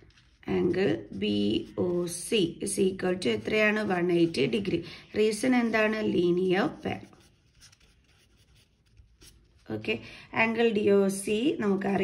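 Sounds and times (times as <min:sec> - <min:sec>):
marker scratching on paper: 0:00.0 - 0:09.6.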